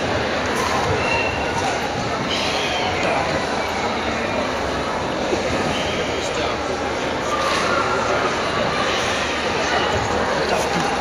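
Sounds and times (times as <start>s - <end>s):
background chatter of onlookers: 0.0s - 11.0s.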